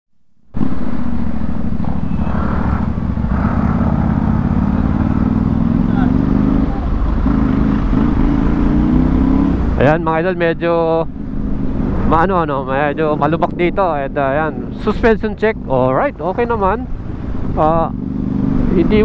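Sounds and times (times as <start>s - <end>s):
scooter engine droning: 0.6s - 9.8s.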